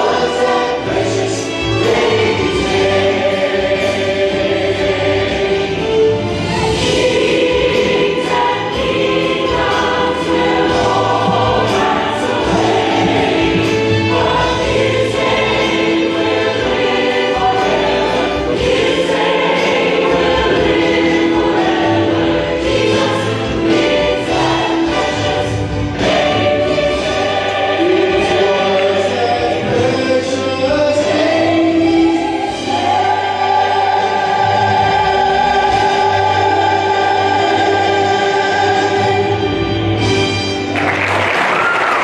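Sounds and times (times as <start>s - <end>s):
choir singing gospel: 0.0s - 42.0s.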